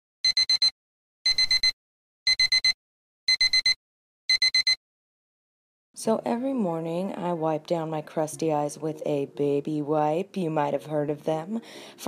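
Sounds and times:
digital alarm clock beeping: 0.2 - 4.8.

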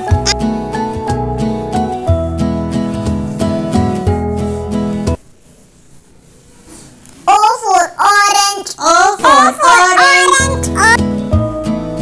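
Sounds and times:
plucked guitar music: 0.0 - 5.2, 10.4 - 12.0
child singing: 7.4 - 11.0.

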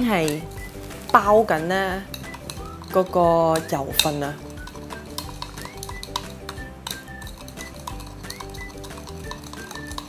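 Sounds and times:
spoon clinking in a glass: 4.0 - 10.0.

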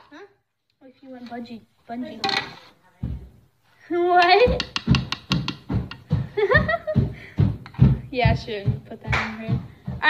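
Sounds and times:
girls laughing: 6.1 - 7.5.

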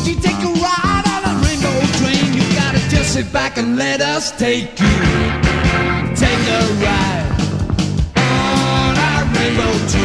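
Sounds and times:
jazz-rock band music: 0.0 - 3.2, 4.8 - 10.0.

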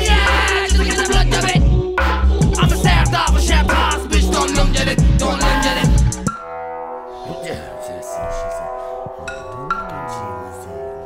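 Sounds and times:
hip-hop drums: 0.0 - 6.4
droning synth chord: 0.0 - 11.0.

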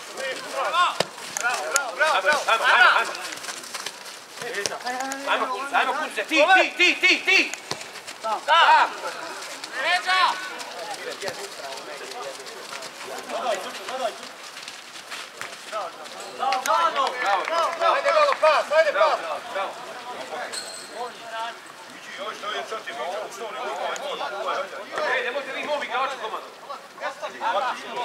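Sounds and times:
men shouting: 5.2 - 7.6, 8.2 - 11.0.

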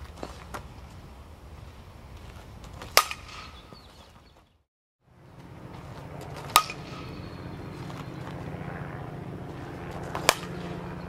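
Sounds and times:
bat cracking ball: 2.8 - 3.8, 6.2 - 8.4, 10.1 - 10.8.

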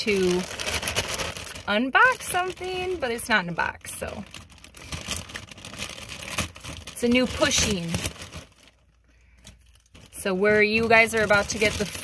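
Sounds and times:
soft packaging crinkling: 0.0 - 12.0.

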